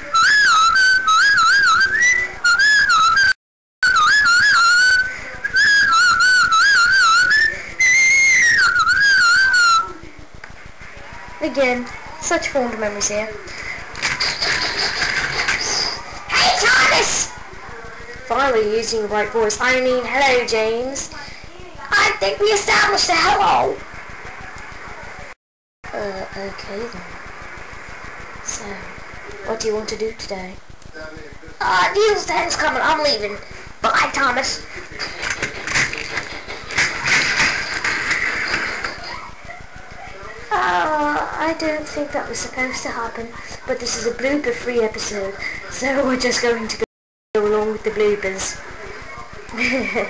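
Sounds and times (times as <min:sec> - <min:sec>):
steady noise: 0:00.0 - 0:46.8, 0:47.4 - 0:50.0
toy train motor whirring: 0:00.1 - 0:17.8, 0:26.4 - 0:46.5
plastic toy train clicks and clatter: 0:13.5 - 0:16.0, 0:34.9 - 0:39.1.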